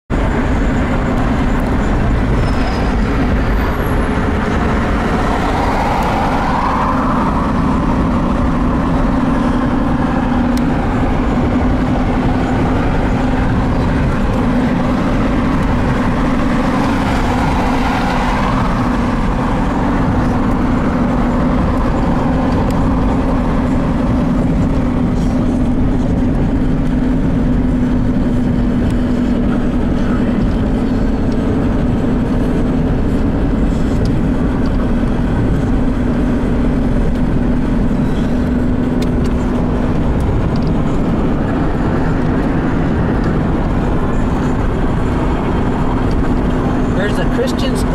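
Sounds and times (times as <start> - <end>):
road and engine noise in car: 0.1 - 47.9.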